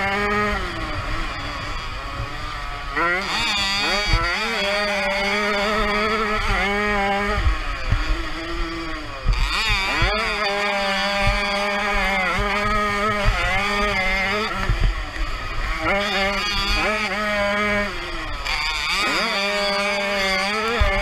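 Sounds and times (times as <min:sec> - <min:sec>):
two-stroke motorcycle engine revving: 0:00.0 - 0:21.0.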